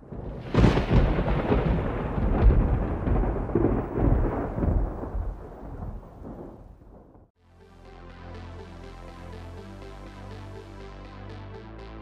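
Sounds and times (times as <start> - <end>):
rolling thunder: 0.0 - 7.3
rain falling: 0.1 - 7.2.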